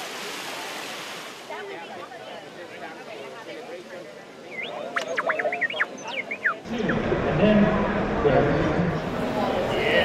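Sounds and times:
crowd chatter: 0.0s - 10.0s
robot beeping and whistling: 4.5s - 6.6s.

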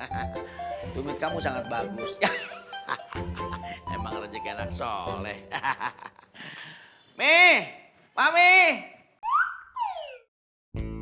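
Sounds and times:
background music: 0.0s - 6.2s
sliding whistle tone: 9.2s - 10.3s.

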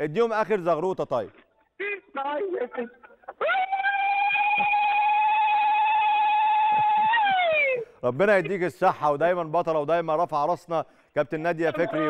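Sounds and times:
woman ululating over telephone: 3.4s - 7.9s.

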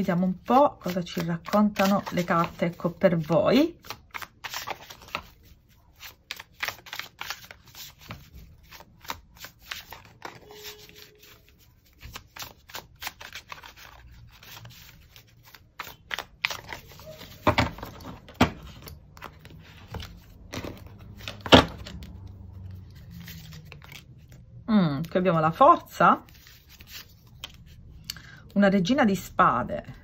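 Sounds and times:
cards being shuffled: 0.0s - 25.1s, 26.3s - 28.0s.

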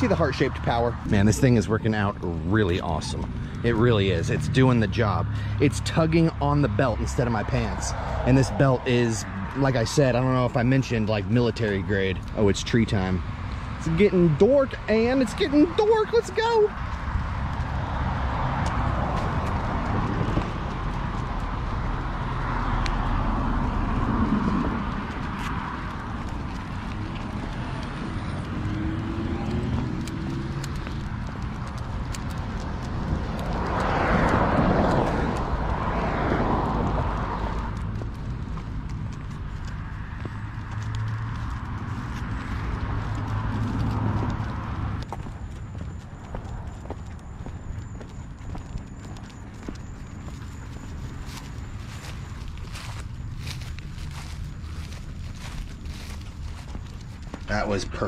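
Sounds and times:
footsteps on pavement: 0.0s - 58.0s
leash and clothing rustle: 22.7s - 28.7s, 37.4s - 58.0s.

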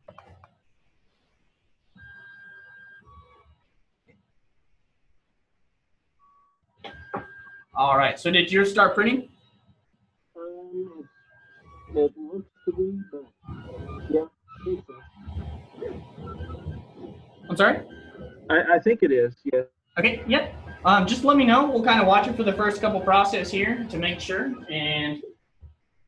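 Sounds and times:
stepper motors whining: 10.8s - 19.1s, 20.0s - 25.3s
printer stepper motors running: 20.0s - 25.2s.

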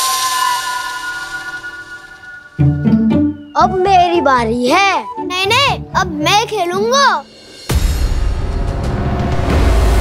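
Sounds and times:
loud drum hit with chord: 7.5s - 10.0s.

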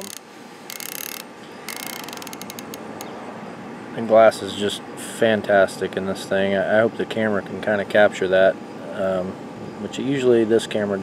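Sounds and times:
scope turret detent clicks: 0.0s - 3.1s.

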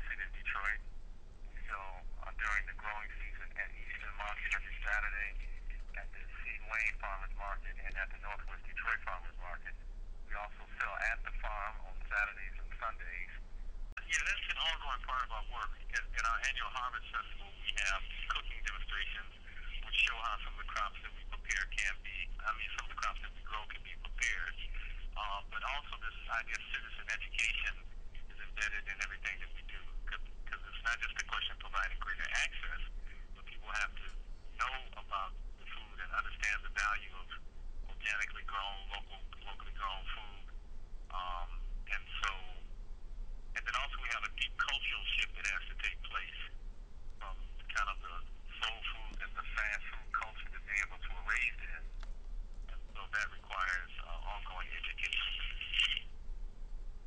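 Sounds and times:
person talking over telephone: 0.0s - 0.9s, 1.5s - 13.4s, 14.0s - 40.5s, 41.1s - 42.7s, 43.6s - 46.6s, 47.2s - 51.9s, 52.7s - 56.1s
steady low hum: 0.0s - 57.0s.

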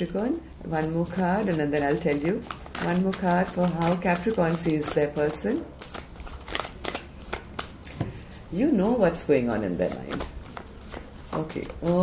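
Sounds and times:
cards being shuffled: 1.1s - 8.4s, 9.4s - 12.0s.

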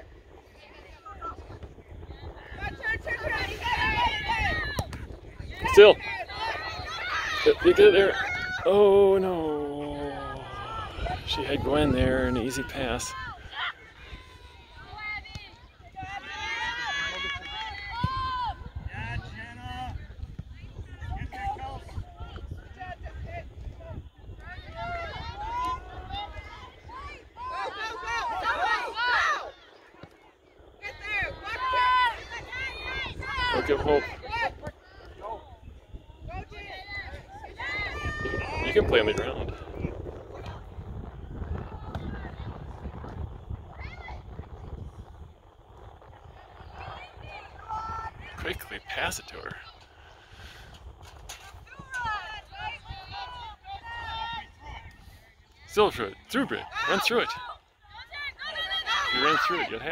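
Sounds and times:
wind rumble on microphone: 0.0s - 28.6s, 30.4s - 55.6s
people calling out: 2.5s - 18.7s.

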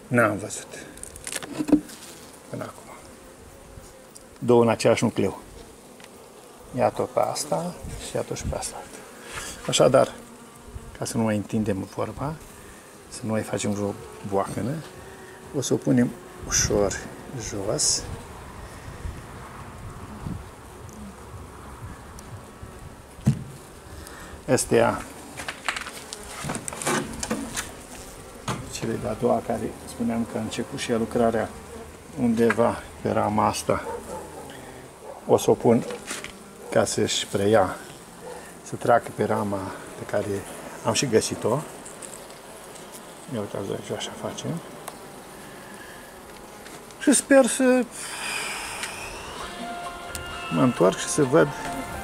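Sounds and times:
honeybees buzzing: 0.0s - 52.0s
soft knocks of hive frame: 1.5s - 2.0s, 23.2s - 23.7s, 24.9s - 29.1s.

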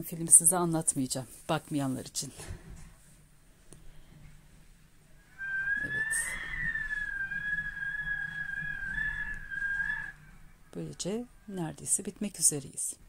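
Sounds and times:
high clear whistle: 5.2s - 10.3s.

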